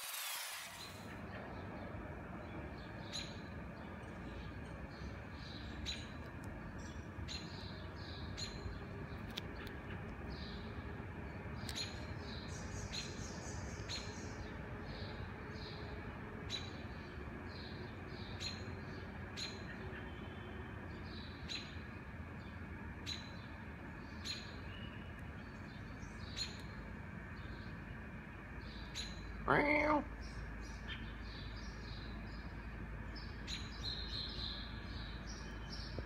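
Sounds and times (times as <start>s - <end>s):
low city hum: 0.0s - 36.0s
small birds chirping: 0.0s - 36.0s.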